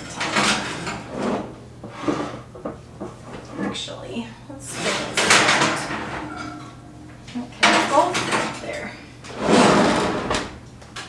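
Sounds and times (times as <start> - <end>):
metal pans scraping on racks: 0.0 - 2.5, 3.1 - 10.6
oven racks rattling: 0.0 - 11.0.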